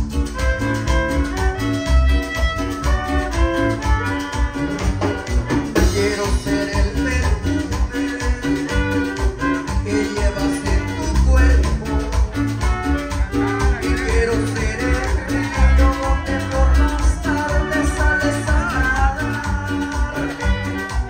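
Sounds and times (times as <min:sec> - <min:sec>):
bass guitar: 0:00.0 - 0:21.0
electric guitar: 0:00.0 - 0:21.0
violin melody: 0:00.4 - 0:05.6.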